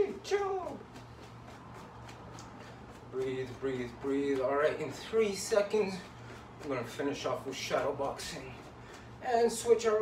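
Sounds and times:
faint footfalls on floor: 0.0 - 10.0
steady low hum: 0.0 - 10.0.

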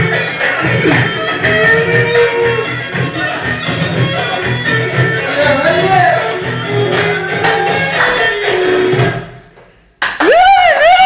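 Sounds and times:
dance music: 0.0 - 9.6
man's high-pitched vocal whoop: 10.2 - 11.0.

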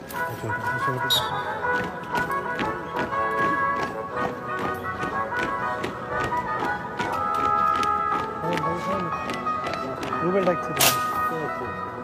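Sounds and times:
march music: 0.0 - 12.0.

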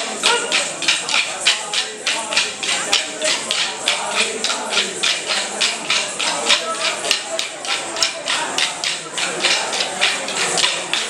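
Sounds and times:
dance sticks clacking: 0.0 - 11.0.

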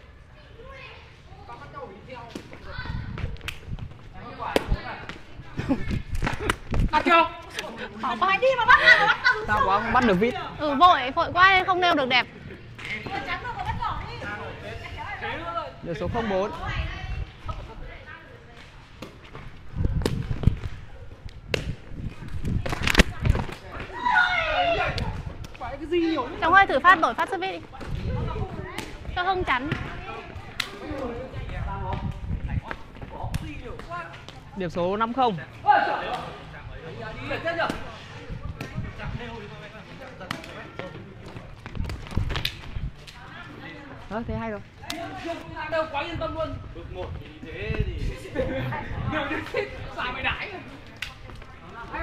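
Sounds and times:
feet kicking shuttlecock: 2.2 - 7.8, 18.6 - 24.1, 37.5 - 39.0, 39.9 - 43.2.

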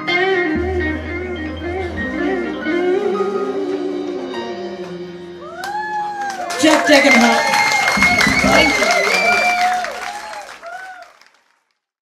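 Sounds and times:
live band playing: 0.0 - 5.6, 6.2 - 10.2.

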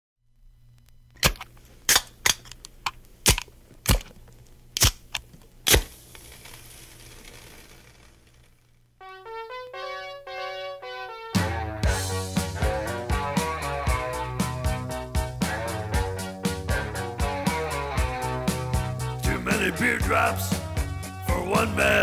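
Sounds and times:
record surface hiss: 0.2 - 22.0
vinyl pops and crackles: 0.6 - 8.8
keyboard melody: 9.0 - 22.0.

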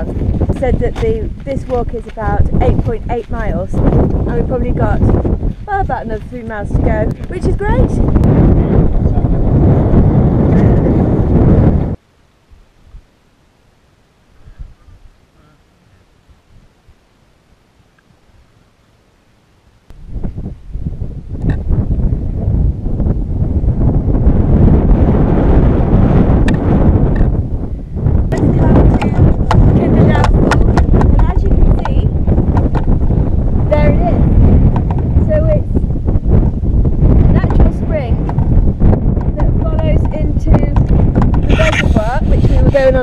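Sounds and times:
wind buffeting microphone: 0.0 - 12.0, 14.4 - 15.2, 19.9 - 43.0.

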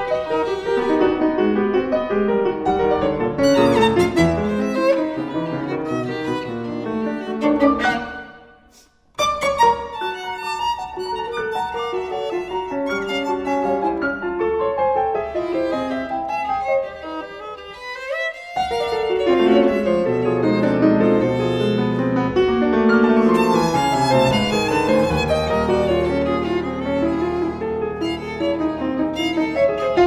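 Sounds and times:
grand piano: 0.0 - 30.0
violin: 0.0 - 30.0.

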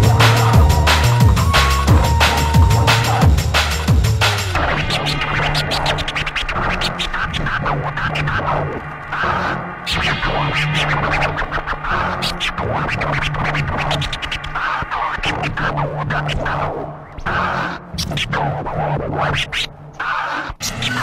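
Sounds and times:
vinyl record scratching: 0.0 - 21.0.

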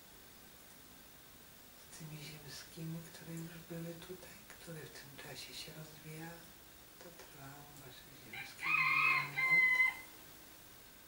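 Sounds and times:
rooster crowing: 8.3 - 10.2.

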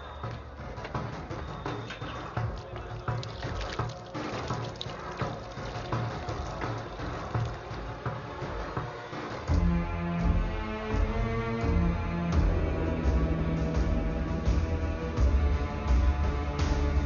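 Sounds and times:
film soundtrack music: 0.0 - 17.0.

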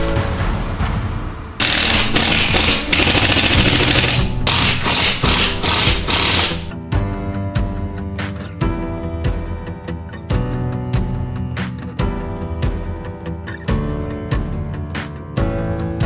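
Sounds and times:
background music: 0.0 - 16.0
power screwdriver driving screws: 1.6 - 6.7.

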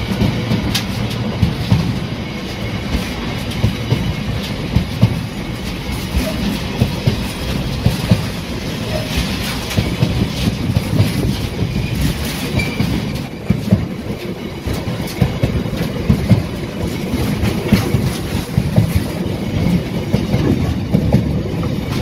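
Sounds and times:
freight wagons rumbling on track: 0.0 - 22.0
wheel clacks and knocks: 0.0 - 22.0.

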